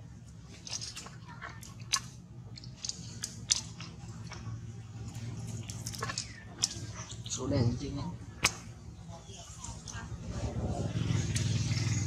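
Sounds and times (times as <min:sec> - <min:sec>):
vehicle engine running: 0:09.7 - 0:12.0.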